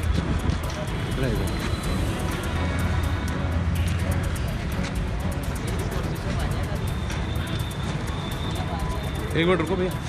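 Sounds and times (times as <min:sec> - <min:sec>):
background music: 0:00.0 - 0:10.0
indistinct crowd chatter: 0:00.0 - 0:10.0
traffic: 0:00.0 - 0:10.0.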